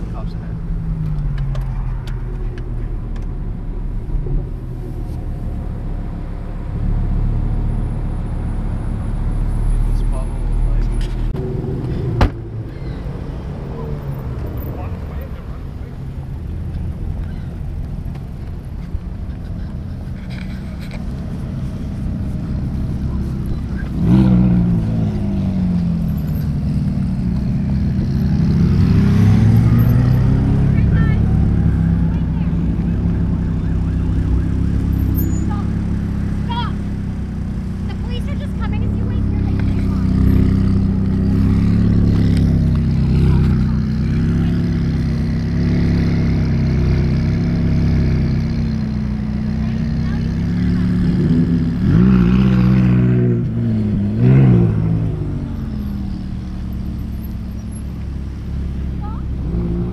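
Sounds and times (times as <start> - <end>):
sports car engines revving: 0.0 - 59.9.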